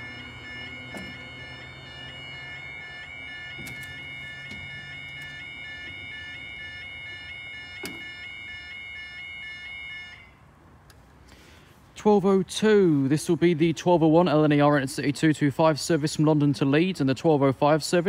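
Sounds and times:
level crossing alarm warble: 0:00.0 - 0:10.5.

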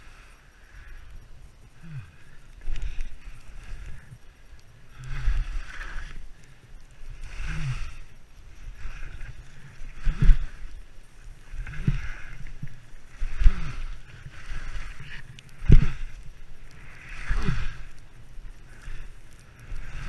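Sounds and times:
skis swishing through snow: 0:02.8 - 0:20.0.

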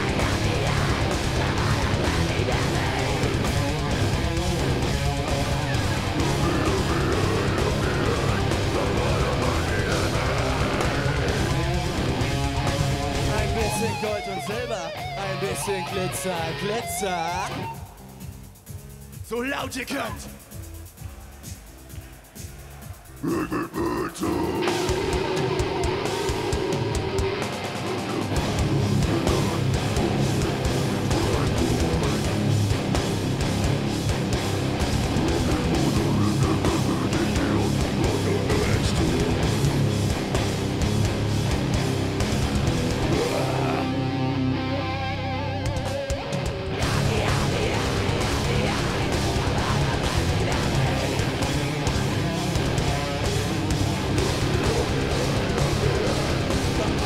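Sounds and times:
heavy metal band playing live: 0:00.0 - 0:18.6, 0:23.1 - 0:57.0.

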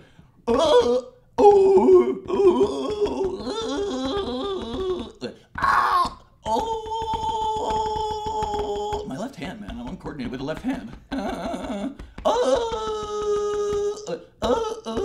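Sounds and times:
man groaning and wailing: 0:00.4 - 0:15.0.

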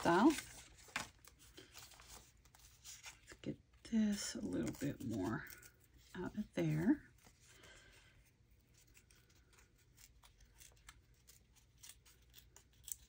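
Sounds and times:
paper tearing and crackling: 0:00.0 - 0:03.2, 0:08.7 - 0:13.0.

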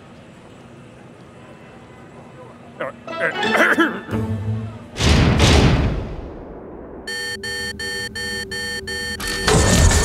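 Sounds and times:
pulsed electronic tone: 0:07.0 - 0:10.0.

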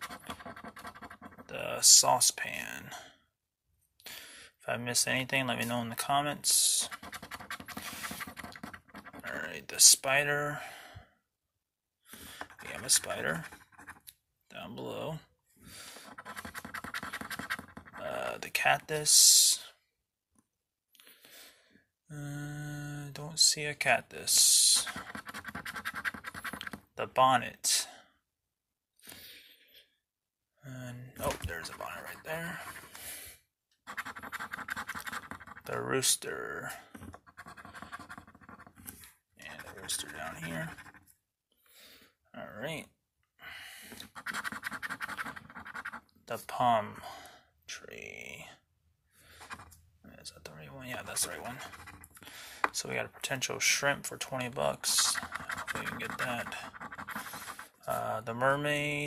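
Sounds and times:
coin scratching lottery ticket: 0:00.0 - 0:01.5, 0:06.8 - 0:09.4, 0:12.5 - 0:14.0, 0:16.0 - 0:18.0, 0:24.4 - 0:26.8, 0:33.9 - 0:35.8, 0:37.1 - 0:38.9, 0:39.5 - 0:41.0, 0:44.0 - 0:46.0, 0:50.9 - 0:52.1, 0:54.8 - 0:57.8
coin scraping lottery ticket: 0:33.9 - 0:35.7, 0:54.8 - 0:57.7.

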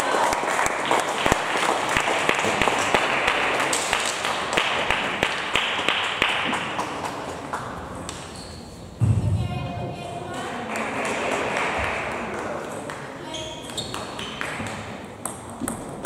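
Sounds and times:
hall background noise: 0:07.0 - 0:13.4.

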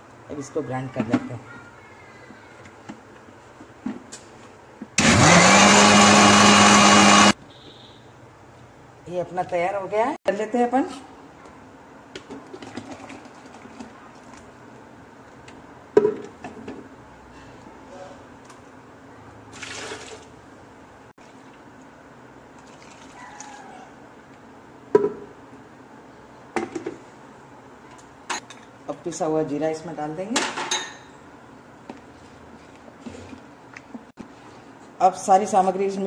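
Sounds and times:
liquid trickling: 0:22.6 - 0:23.5.

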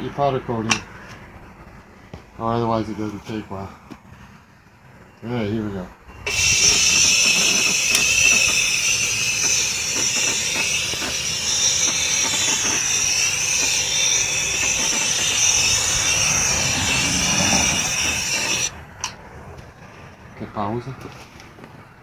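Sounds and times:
compressed air hissing: 0:06.2 - 0:18.8.

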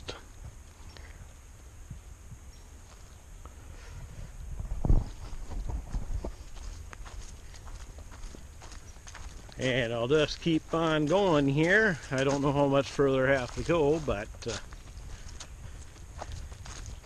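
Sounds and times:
low microphone rumble: 0:00.0 - 0:17.0
footsteps on dry leaves: 0:04.9 - 0:17.0.

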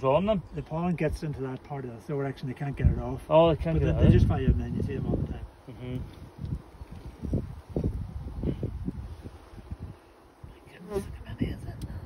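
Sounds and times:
honeybees buzzing: 0:00.0 - 0:12.0.

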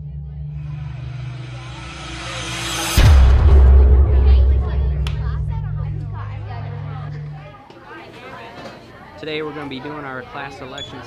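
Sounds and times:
heavy low boom: 0:00.0 - 0:07.5
low music drone: 0:00.0 - 0:07.5
whooshing riser: 0:00.5 - 0:07.4.

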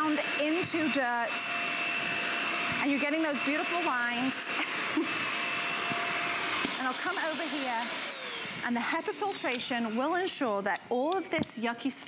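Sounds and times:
vacuum cleaner running: 0:00.0 - 0:12.0.

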